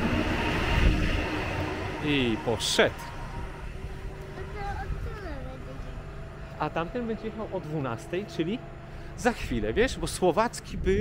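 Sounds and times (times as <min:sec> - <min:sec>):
train rumble: 0:00.0 - 0:11.0
faint steady hum: 0:02.9 - 0:11.0.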